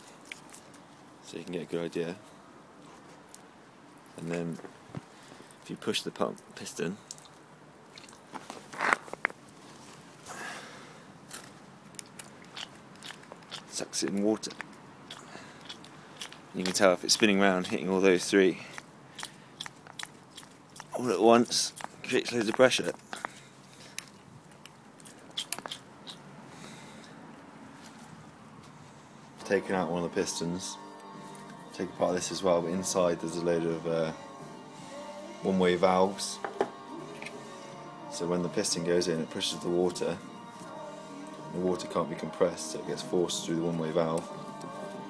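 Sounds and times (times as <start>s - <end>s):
faint steady hiss: 0.0s - 45.0s
sharp wet squelch: 18.7s - 21.0s, 24.0s - 26.3s.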